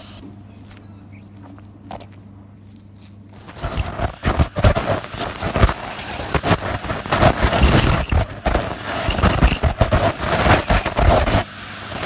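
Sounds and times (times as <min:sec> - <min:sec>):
thin high whine: 0:03.3 - 0:12.0
dental scaler scraping teeth: 0:03.4 - 0:12.0.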